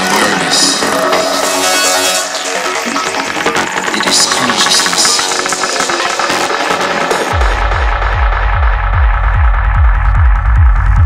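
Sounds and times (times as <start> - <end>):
kick drum and bassline: 0.0 - 11.0.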